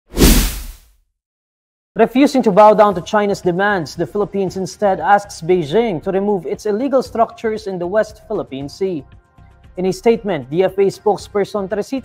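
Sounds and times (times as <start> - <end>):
whoosh sound effect: 0.1 - 0.8.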